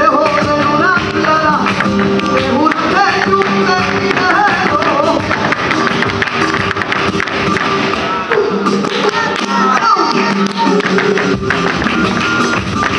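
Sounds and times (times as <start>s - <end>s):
flamenco guitar music: 0.0s - 12.9s
sharp percussive taps and claps: 0.2s - 12.9s.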